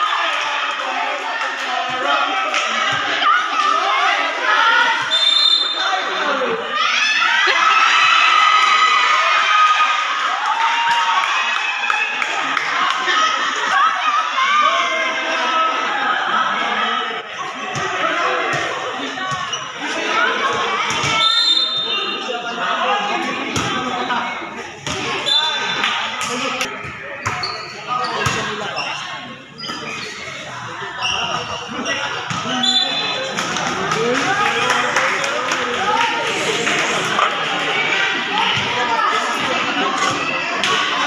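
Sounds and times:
chatter and shouts: 0.0s - 41.0s.

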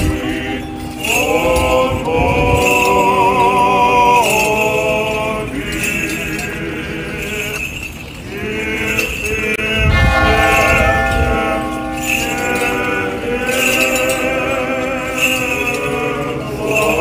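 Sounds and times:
small bells jingling: 0.0s - 17.0s.

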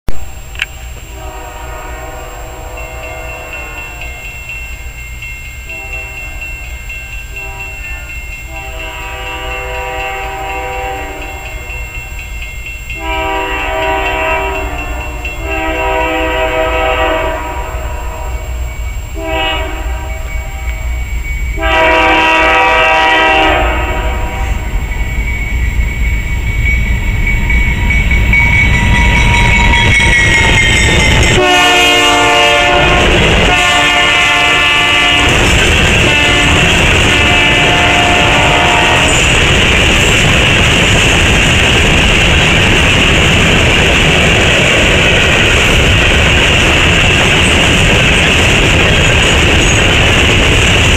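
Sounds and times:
train air horn blasts: 0.1s - 4.3s, 5.7s - 6.6s, 7.3s - 11.7s, 13.0s - 21.0s, 21.6s - 24.9s, 31.2s - 39.4s
diesel locomotive rumble: 0.1s - 50.9s
train wheels rumbling: 0.1s - 50.9s.

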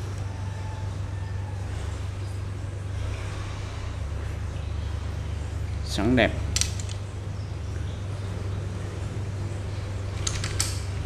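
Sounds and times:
steady low hum: 0.0s - 11.0s
fishing rod clicks: 6.5s - 7.1s, 10.1s - 11.0s.

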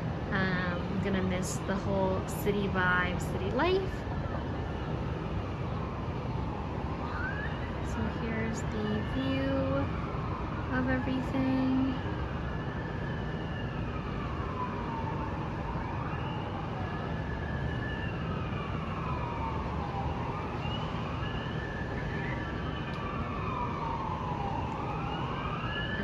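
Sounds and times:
city traffic noise: 0.0s - 26.0s
emergency siren wailing: 0.0s - 26.0s.

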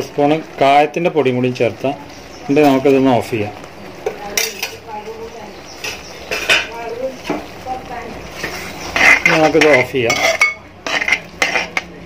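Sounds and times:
metal spoon scraping steel pot: 8.3s - 12.0s.

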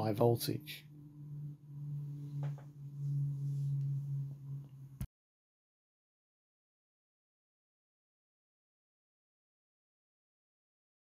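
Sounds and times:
low hum: 0.0s - 5.1s.

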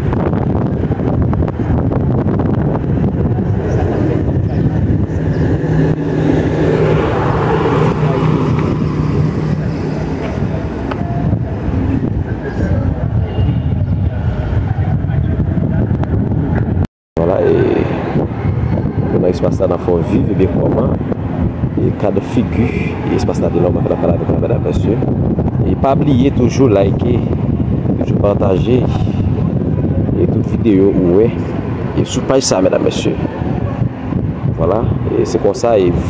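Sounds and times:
low hum: 0.0s - 35.2s
constant rumble: 0.0s - 36.0s
vehicle engine running: 0.6s - 13.0s.

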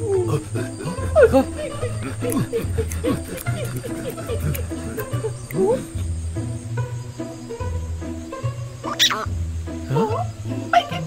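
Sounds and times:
cartoon background music: 0.0s - 11.0s
cartoon ostrich squawk: 8.9s - 9.3s.

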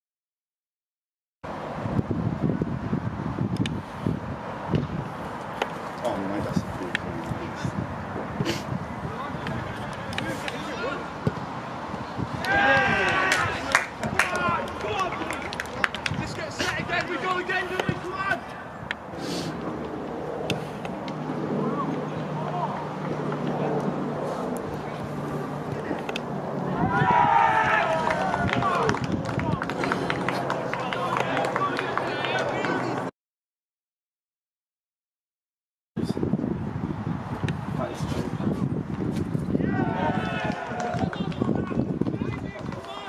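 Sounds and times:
distant shouts from players: 12.4s - 15.5s, 26.7s - 29.6s, 39.6s - 43.0s.

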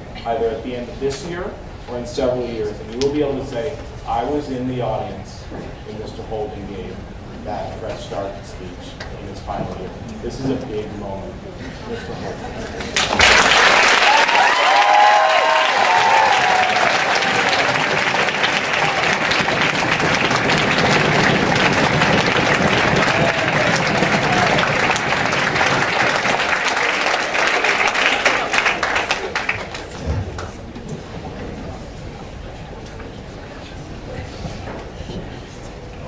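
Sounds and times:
people cheering: 12.8s - 30.0s
large audience applauding: 12.8s - 30.6s.

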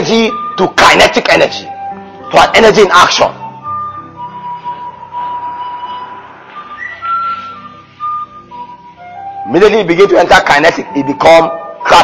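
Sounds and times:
whistle-like instrumental melody: 0.0s - 12.0s.

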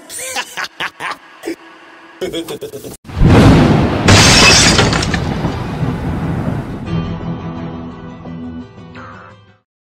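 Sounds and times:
shattering burst: 3.1s - 6.8s
loud crash: 3.1s - 6.9s
music: 6.8s - 9.7s.

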